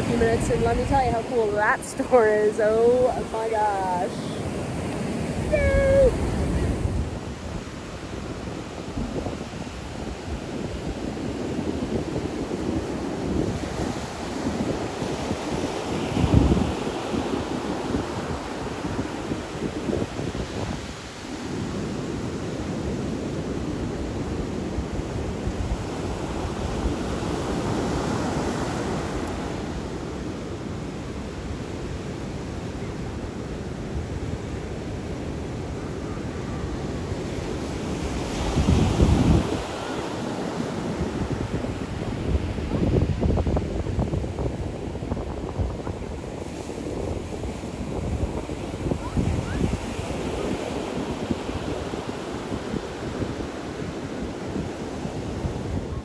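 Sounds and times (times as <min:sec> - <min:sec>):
ocean surf breaking on beach: 0:00.0 - 0:56.0
wind rumbling on microphone: 0:00.0 - 0:56.0.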